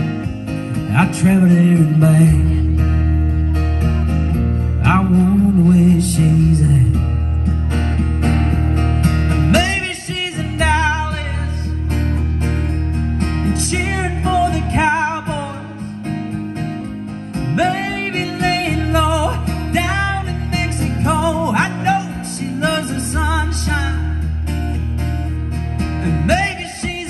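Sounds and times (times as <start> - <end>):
live country song: 0.0 - 27.0.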